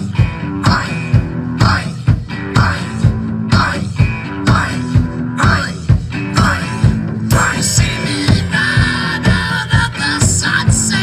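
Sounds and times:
bass guitar: 0:00.0 - 0:11.0
drum kit rock beat: 0:00.0 - 0:11.0
electric guitar: 0:00.0 - 0:11.0.

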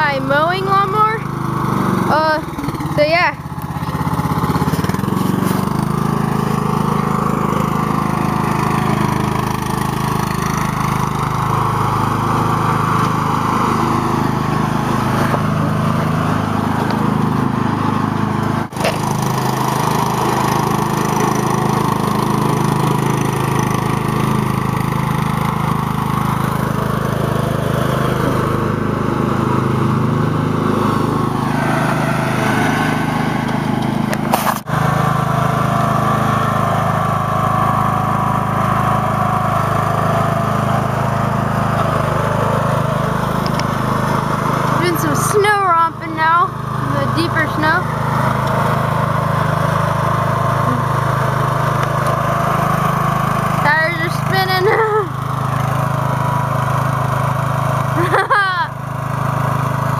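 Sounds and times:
lawn tractor engine running: 0:00.0 - 0:59.9.

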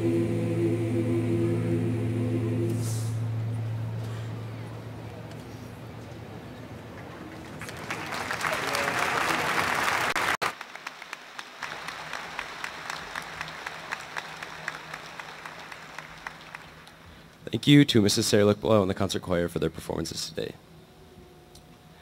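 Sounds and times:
audience applauding: 0:07.0 - 0:17.2.

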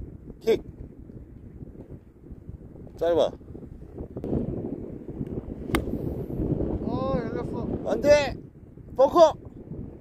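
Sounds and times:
wind buffeting microphone: 0:00.0 - 0:10.0
golf club striking ball: 0:05.6 - 0:06.4.

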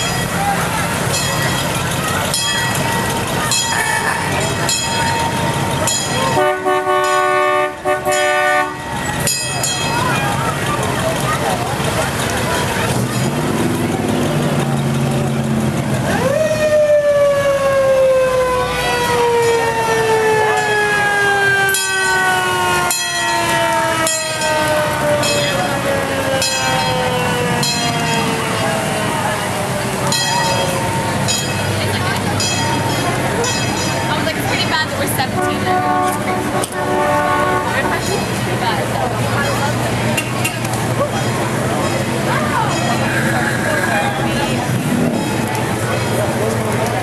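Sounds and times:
classic car engines rumbling: 0:00.0 - 0:47.0
crowd voices: 0:00.0 - 0:47.0
vehicle horn chord: 0:06.3 - 0:09.0, 0:35.2 - 0:38.1.

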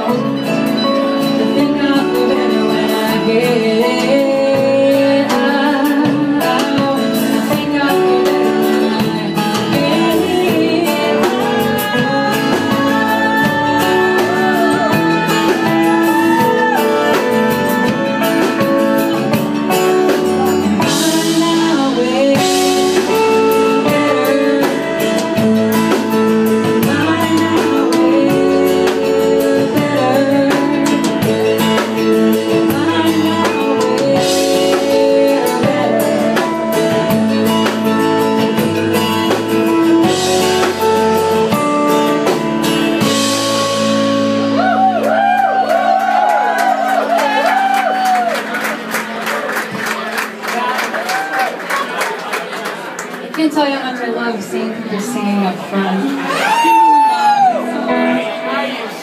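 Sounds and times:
person singing: 0:00.0 - 0:43.2
folk-rock band playing: 0:00.0 - 0:59.0.

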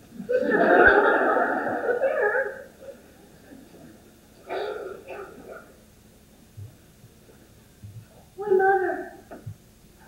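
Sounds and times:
audience laughing: 0:00.2 - 0:04.0.

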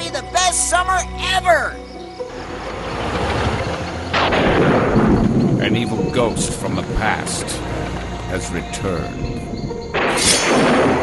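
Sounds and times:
low rumble: 0:02.2 - 0:11.0
loud boom crack: 0:04.1 - 0:05.7.

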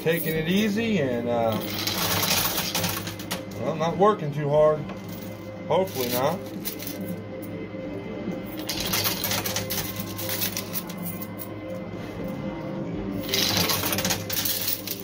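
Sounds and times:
coins clattering and clinking: 0:00.0 - 0:00.8, 0:01.4 - 0:03.7, 0:04.9 - 0:07.6, 0:08.4 - 0:11.8, 0:13.2 - 0:15.0
background music: 0:00.0 - 0:15.0.

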